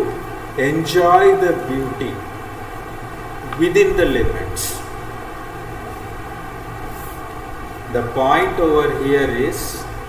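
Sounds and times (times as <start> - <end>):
background hiss: 0.0 - 10.0
steady low hum: 0.0 - 10.0.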